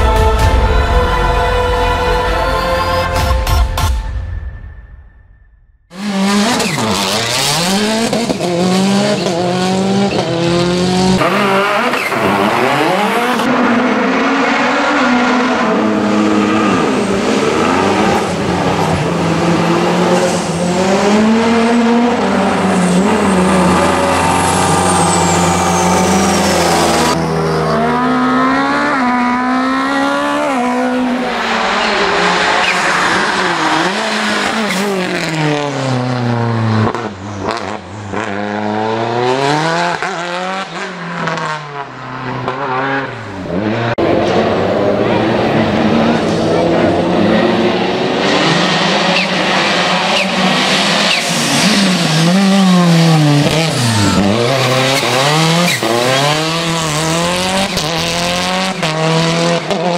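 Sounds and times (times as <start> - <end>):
racing car engine revving: 5.9 - 59.9.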